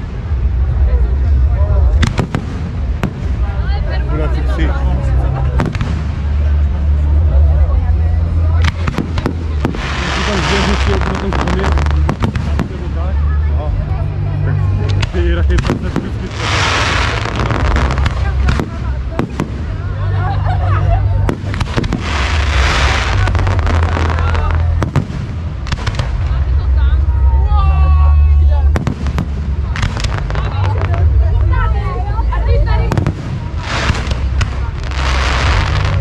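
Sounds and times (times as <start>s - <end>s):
firework crackling: 0.0s - 7.4s, 8.3s - 13.4s, 14.9s - 27.4s, 28.3s - 36.0s
low rumble: 0.0s - 36.0s.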